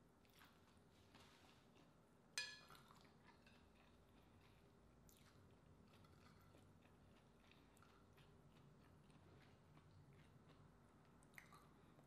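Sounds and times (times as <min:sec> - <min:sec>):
person chewing: 0:02.8 - 0:12.0.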